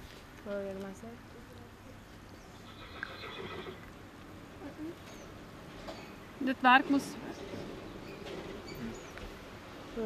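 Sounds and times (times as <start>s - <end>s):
horse whinnying: 2.6s - 3.9s.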